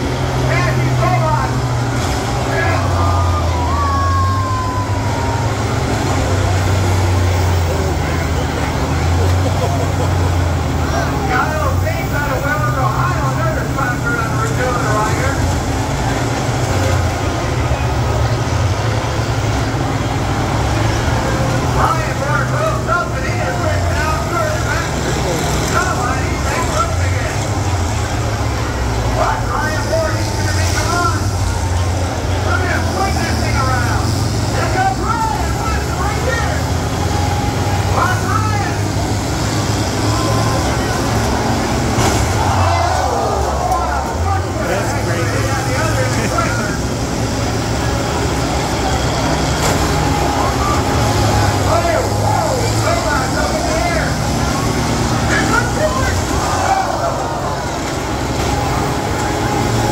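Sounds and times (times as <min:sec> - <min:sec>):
combine harvester engines revving: 0:00.0 - 0:59.9
crowd shouting and cheering: 0:00.0 - 0:59.9.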